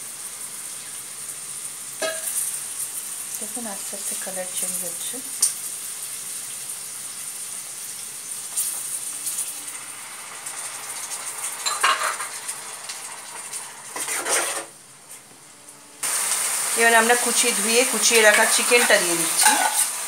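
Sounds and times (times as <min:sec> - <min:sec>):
food sizzling in oil: 0:00.0 - 0:15.2, 0:16.0 - 0:20.0
metal spatula scraping pan: 0:11.6 - 0:12.4, 0:13.9 - 0:14.8, 0:17.9 - 0:20.0.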